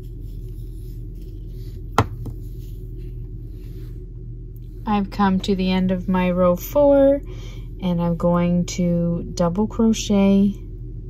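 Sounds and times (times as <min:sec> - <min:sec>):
steady low hum: 0:00.0 - 0:11.0
sharp knocks: 0:02.0 - 0:02.4.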